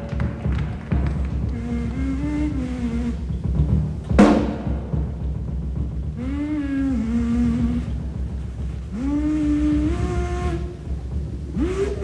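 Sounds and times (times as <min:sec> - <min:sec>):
jazz band playing: 0:00.0 - 0:12.0
lead instrument long phrases: 0:00.0 - 0:12.0
low steady bass: 0:00.0 - 0:12.0.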